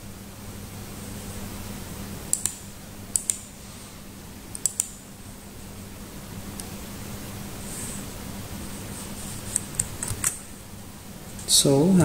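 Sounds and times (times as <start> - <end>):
low steady hum: 0.0 - 12.0
computer keyboard and mouse clicks: 2.3 - 3.4, 4.6 - 5.0.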